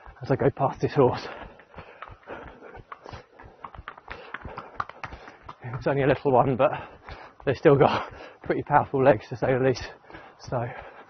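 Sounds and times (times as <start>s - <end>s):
horse hooves clip-clopping on tarmac: 0.0s - 11.0s
runner's footsteps: 0.0s - 11.0s.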